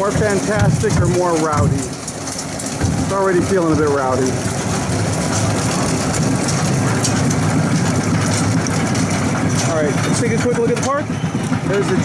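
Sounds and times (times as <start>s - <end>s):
roller coaster lift rattle: 0.0s - 12.0s.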